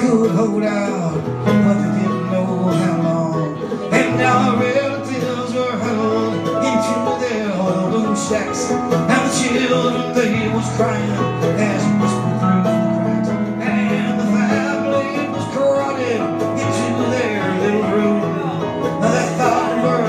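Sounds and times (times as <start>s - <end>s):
man singing: 0.0s - 20.0s
strummed acoustic string instrument: 0.0s - 20.0s.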